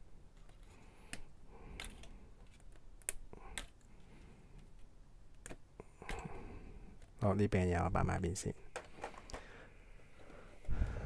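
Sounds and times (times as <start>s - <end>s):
plastic toy parts clicking: 1.8s - 3.9s.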